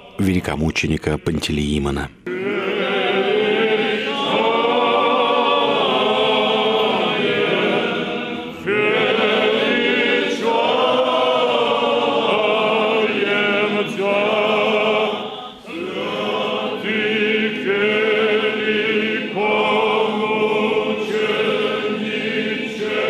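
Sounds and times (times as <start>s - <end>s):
choir chanting unaccompanied: 0.0s - 23.0s.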